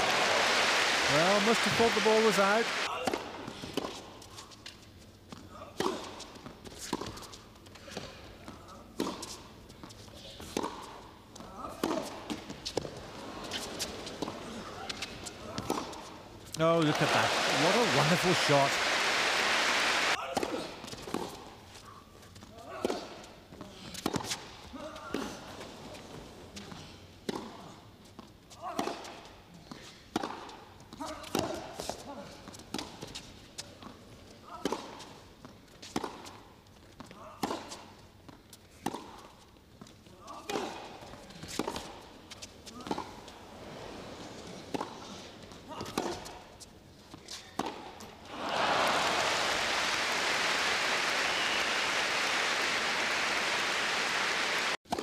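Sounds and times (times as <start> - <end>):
crowd applauding: 0.0 - 2.9, 16.6 - 20.2, 48.3 - 54.8
tennis ball bouncing: 9.0 - 9.4, 10.4 - 16.1, 27.3 - 27.6, 30.1 - 33.2, 34.6 - 39.4, 44.7 - 46.4, 47.1 - 48.2.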